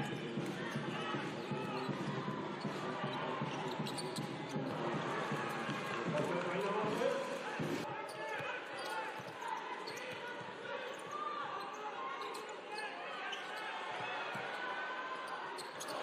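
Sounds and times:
crowd murmur: 0:00.0 - 0:08.0
crowd and player voices: 0:00.0 - 0:16.0
sneakers squeaking: 0:00.0 - 0:16.0.

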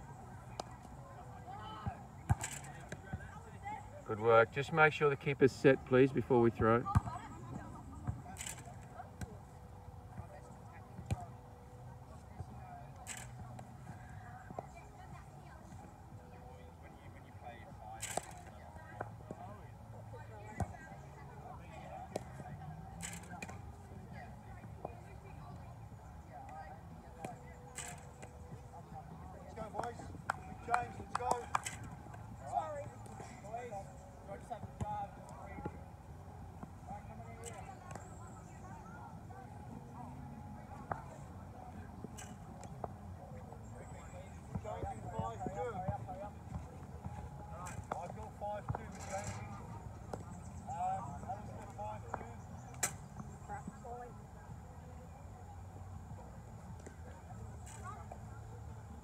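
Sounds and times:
faint voices: 0:00.0 - 0:59.0.

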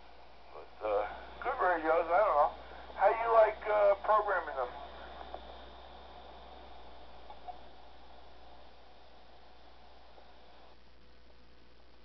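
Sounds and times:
radio scanner hiss and hum: 0:00.0 - 0:12.0.

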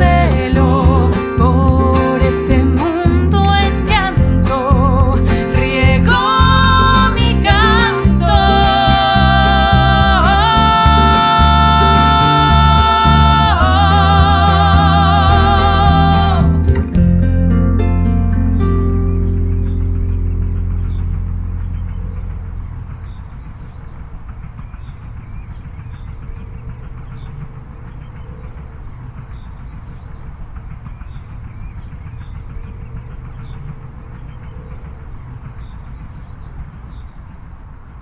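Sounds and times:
acoustic guitar chord ringing: 0:00.0 - 0:23.0
low background rumble: 0:00.0 - 0:38.0.

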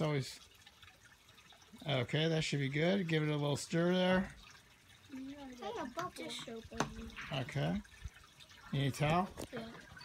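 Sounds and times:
children's voices: 0:05.1 - 0:07.2.

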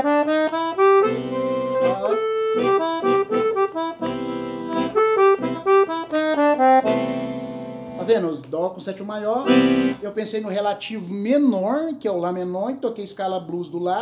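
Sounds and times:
accordion playing blues melody: 0:00.0 - 0:08.4, 0:09.4 - 0:10.2.

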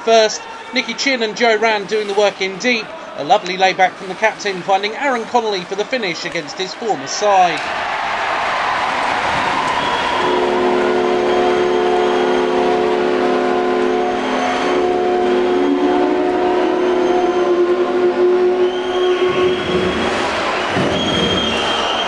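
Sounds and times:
crowd noise: 0:00.0 - 0:15.5, 0:17.6 - 0:22.0
goal horn chord: 0:09.8 - 0:20.2.

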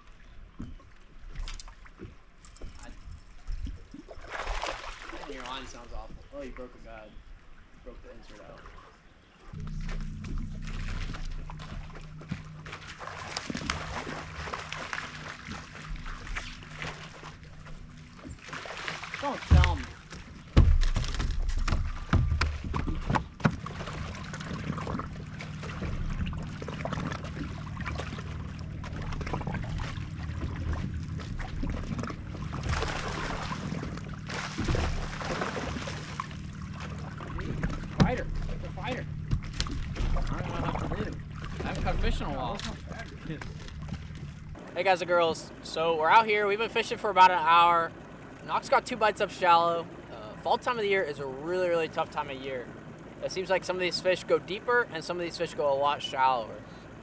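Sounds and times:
water lapping against boat hull: 0:00.0 - 0:57.0
steady low hum: 0:02.3 - 0:57.0
wind rumbling on microphone: 0:02.5 - 0:04.9.

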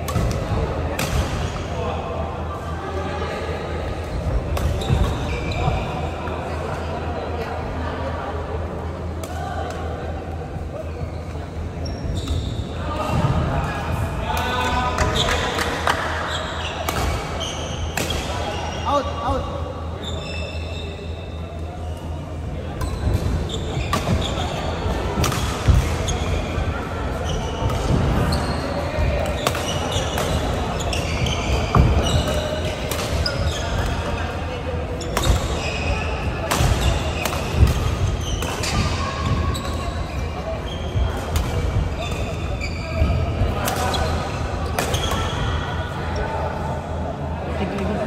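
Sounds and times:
shoe squeaks on court floor: 0:04.7 - 0:06.0, 0:10.9 - 0:12.7, 0:20.0 - 0:21.4, 0:28.3 - 0:34.0, 0:35.0 - 0:37.5, 0:41.9 - 0:45.5.

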